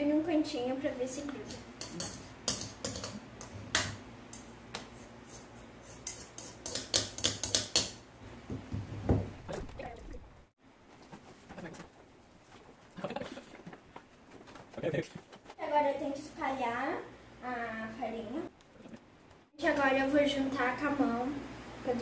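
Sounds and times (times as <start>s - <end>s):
knife scraping a mixing bowl: 1.4s - 3.7s, 4.8s - 7.9s.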